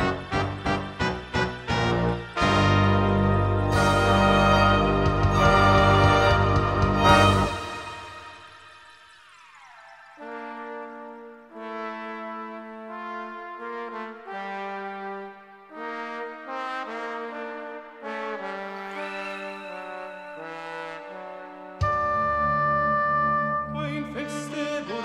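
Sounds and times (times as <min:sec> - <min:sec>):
brass playing slow chords: 0:00.0 - 0:08.5, 0:10.2 - 0:19.2, 0:20.4 - 0:25.0
loud full chord: 0:00.0 - 0:08.8.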